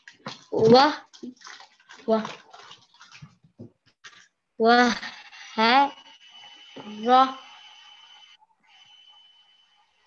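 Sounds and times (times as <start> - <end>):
child's voice over video call: 0.5 - 1.1, 2.0 - 2.4, 4.6 - 6.0, 6.8 - 7.5.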